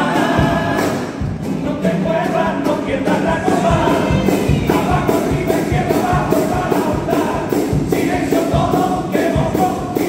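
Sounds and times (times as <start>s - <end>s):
drum strokes: 0.0s - 10.0s
male chorus singing in harmony: 0.0s - 10.0s.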